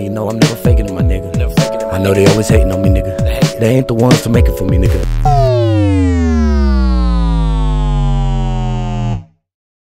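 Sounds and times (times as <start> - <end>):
synthesizer tone: 4.4 - 9.4
deep sustained bass: 4.6 - 9.4.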